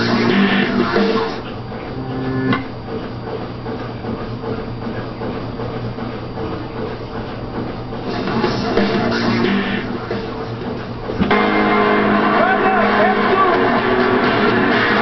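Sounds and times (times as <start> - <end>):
music from a television: 0.0 - 2.7, 8.0 - 15.0
steady low hum with hiss: 0.0 - 14.8
held tone: 1.9 - 2.7.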